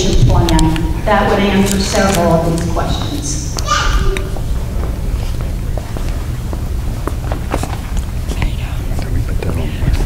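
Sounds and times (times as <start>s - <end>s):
faint low voices: 8.3s - 10.0s.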